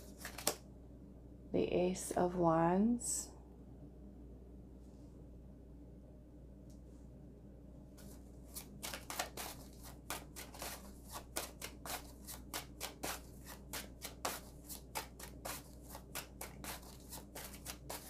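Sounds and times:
cards being shuffled: 0:00.0 - 0:00.6, 0:08.0 - 0:18.0.

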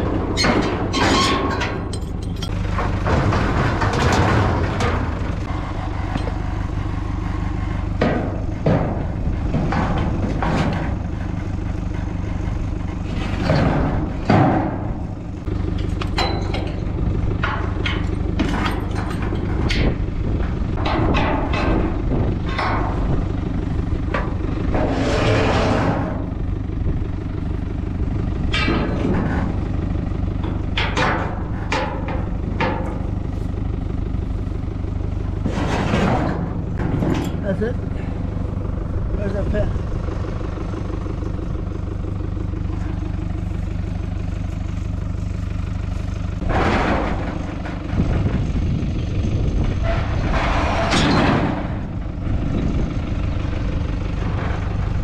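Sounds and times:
metal clanks and knocks: 0:00.0 - 0:55.0
tractor engine idling: 0:00.0 - 0:55.0.

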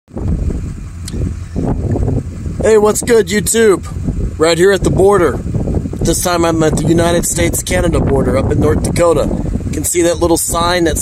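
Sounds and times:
car engine running: 0:00.1 - 0:11.0.

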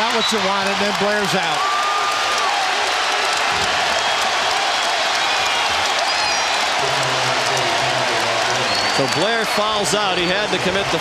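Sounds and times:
crowd cheering loudly: 0:00.0 - 0:11.0.

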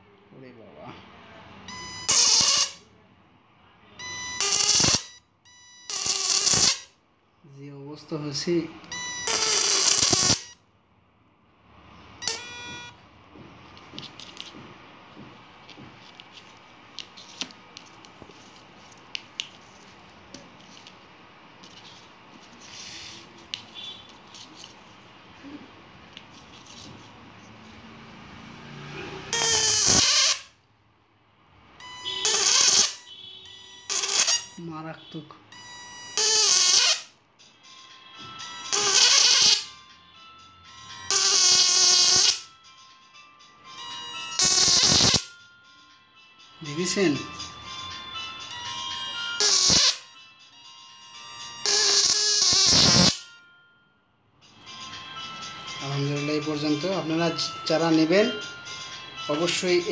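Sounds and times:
harsh electrical arc buzzing: 0:04.5 - 0:05.0, 0:06.0 - 0:06.9, 0:09.3 - 0:10.5, 0:29.4 - 0:30.5, 0:32.2 - 0:33.0, 0:44.4 - 0:45.3, 0:49.4 - 0:50.0, 0:51.7 - 0:53.2
electric arc crackling: 0:04.6 - 0:05.0, 0:06.1 - 0:06.8, 0:09.6 - 0:10.4, 0:44.4 - 0:45.3, 0:52.5 - 0:53.2.

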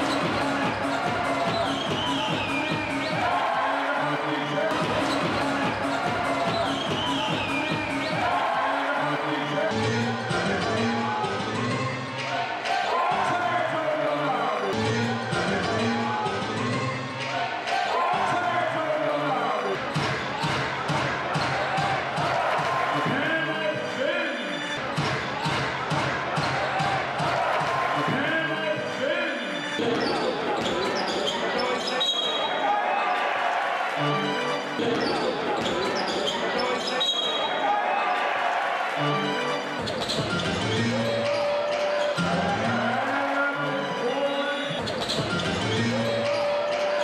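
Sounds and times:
sneakers squeaking on court: 0:00.0 - 0:03.3, 0:04.7 - 0:08.3, 0:29.8 - 0:32.6, 0:34.8 - 0:37.6, 0:39.7 - 0:42.3, 0:44.6 - 0:47.0
arena crowd voices and calls: 0:00.0 - 0:47.0.

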